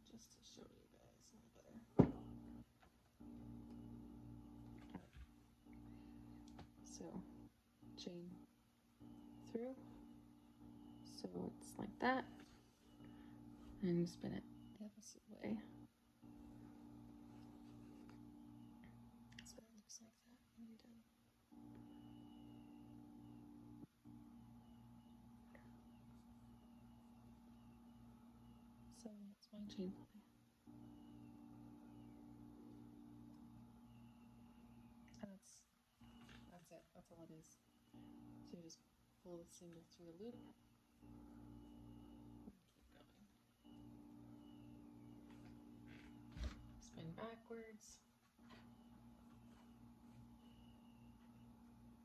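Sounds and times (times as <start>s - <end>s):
spindle whirring hum: 0.0s - 52.0s.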